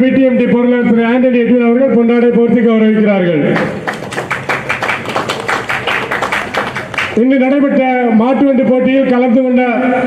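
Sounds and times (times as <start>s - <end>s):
people clapping: 3.6s - 7.2s.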